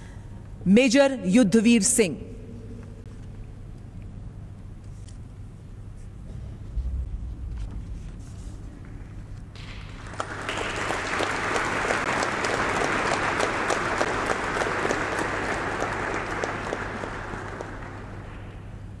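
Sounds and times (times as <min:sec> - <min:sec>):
audience applauding: 0:09.6 - 0:19.0.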